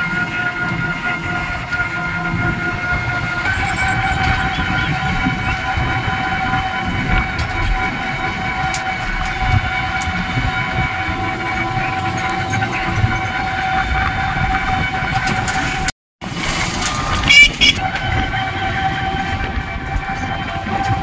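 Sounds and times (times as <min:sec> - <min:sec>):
loud wavering tone: 0:00.0 - 0:15.8
road rumble: 0:00.0 - 0:21.0.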